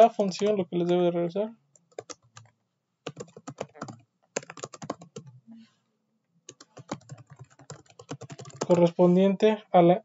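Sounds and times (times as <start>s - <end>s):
typing on computer keyboard: 1.8s - 5.4s, 6.5s - 9.0s.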